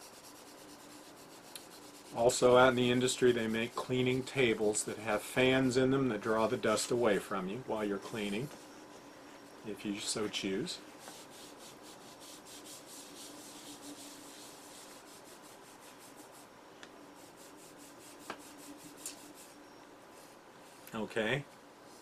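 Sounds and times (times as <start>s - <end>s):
abrasive pad rubbing ceramic: 0.0s - 4.8s, 10.8s - 16.5s.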